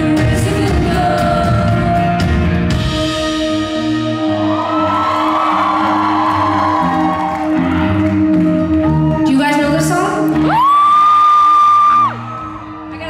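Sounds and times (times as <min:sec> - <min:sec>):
pop-rock band playing: 0:00.0 - 0:13.0
audience cheering: 0:04.2 - 0:09.5.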